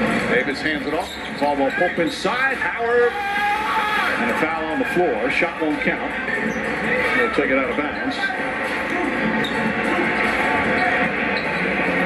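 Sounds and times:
crowd murmur through tv speaker: 0.0s - 12.0s.

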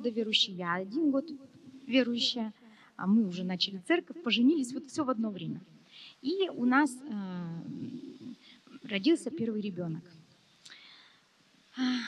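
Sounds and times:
woman breathing in: 10.7s - 11.3s.

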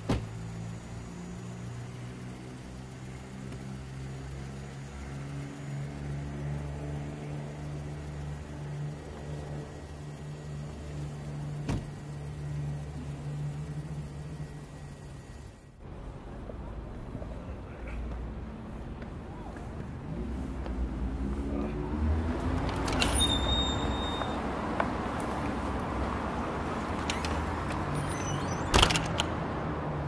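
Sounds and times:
car door shutting: 0.0s - 0.3s, 11.6s - 12.0s
car engine idling: 0.2s - 20.6s.

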